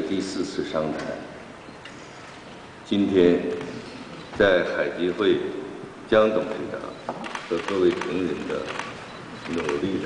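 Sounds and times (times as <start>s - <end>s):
man giving a formal address: 0.0s - 1.4s, 2.8s - 10.0s.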